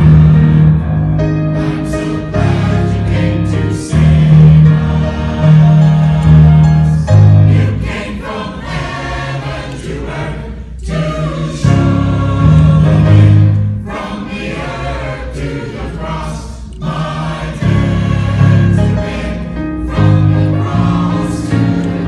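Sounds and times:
church choir singing: 0.0 - 22.0.

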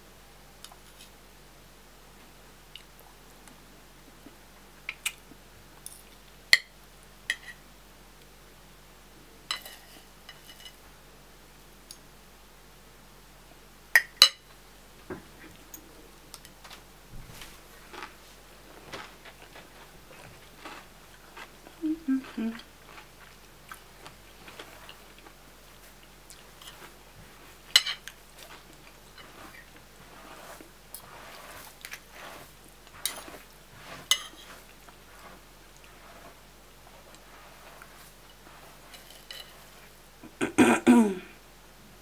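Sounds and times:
cutlery clinking on a plate: 9.5 - 10.8, 38.3 - 39.7
chewing and mouth sounds: 18.8 - 25.4.

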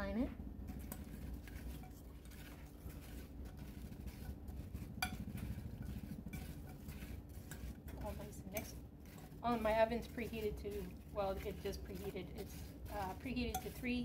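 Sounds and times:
fork clinking against a dish: 5.0 - 5.2.

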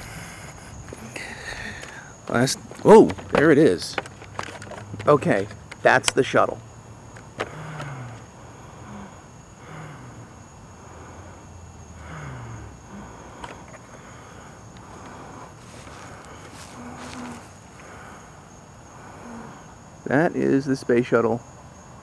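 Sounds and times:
insects trilling: 0.0 - 22.0.

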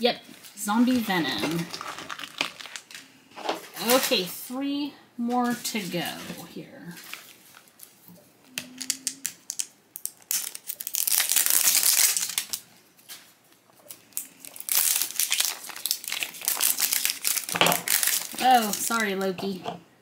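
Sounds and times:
plastic wrapper crinkling: 0.3 - 4.1, 6.8 - 8.1, 8.7 - 19.3.

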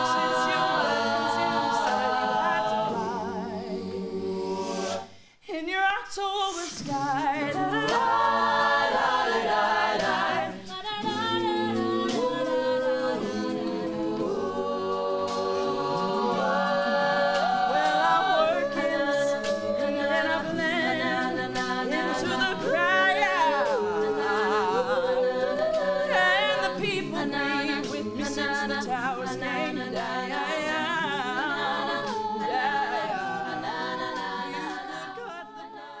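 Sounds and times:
a cappella group singing: 0.0 - 36.0.

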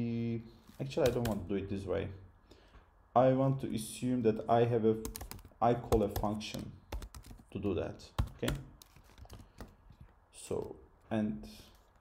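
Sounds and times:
keyboard keystrokes: 5.0 - 7.4, 8.2 - 9.8.

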